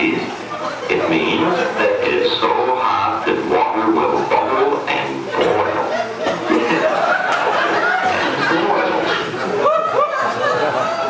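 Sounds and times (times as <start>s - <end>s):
indistinct speech: 0.0s - 7.0s.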